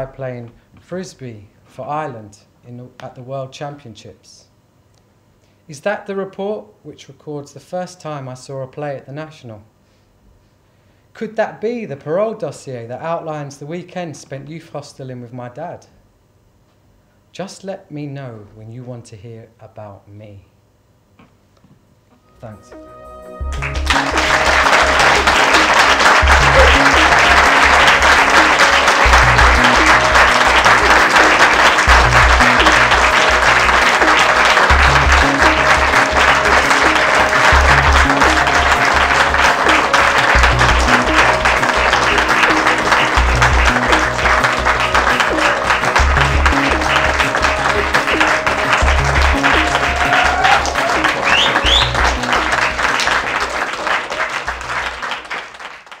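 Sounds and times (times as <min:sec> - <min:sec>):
music with steady beat: 0:22.2 - 0:53.6
audience applauding: 0:23.4 - 0:56.0.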